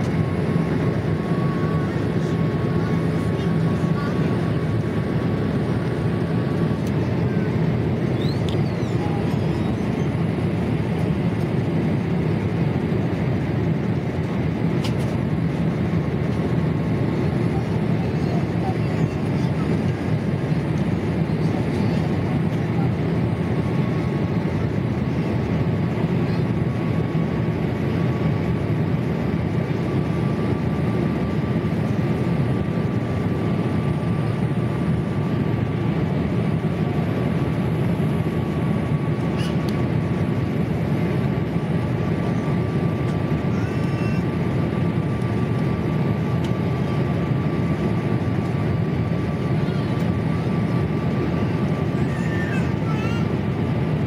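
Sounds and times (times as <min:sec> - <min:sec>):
airplane cabin airflow rush: 0:00.0 - 0:54.0
faint steady whine: 0:00.0 - 0:54.0.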